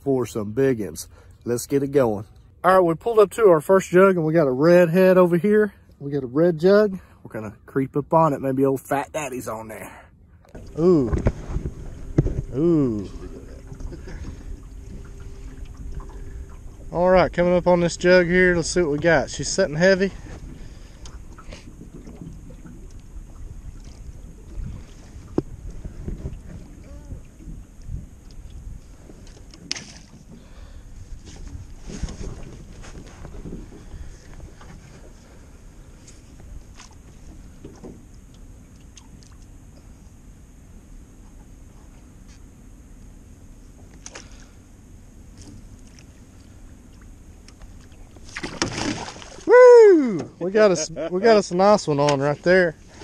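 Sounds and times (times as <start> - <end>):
water lapping: 9.8 - 39.9, 45.3 - 53.0
low rumble: 10.2 - 29.5
fish splashing: 45.3 - 50.3.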